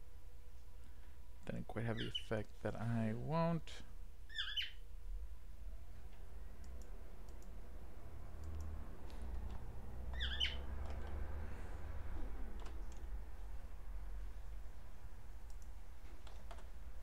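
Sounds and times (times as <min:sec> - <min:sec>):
cockatiel chirping: 0:04.3 - 0:04.8, 0:10.2 - 0:10.6
faint keyboard clicks: 0:08.4 - 0:09.6, 0:10.8 - 0:11.2, 0:12.6 - 0:13.1, 0:15.5 - 0:16.7.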